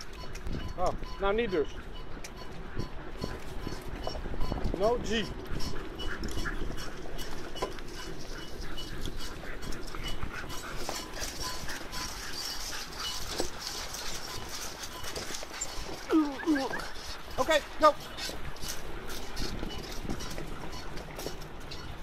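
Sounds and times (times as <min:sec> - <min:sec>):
patter of dog paws: 0:00.0 - 0:22.0
rustle of leaves and wheels: 0:00.0 - 0:22.0
dog yelps: 0:08.0 - 0:17.4.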